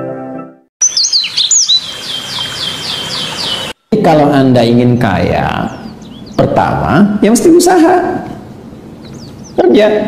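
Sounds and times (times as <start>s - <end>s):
songbird whistling: 0.8s - 3.8s.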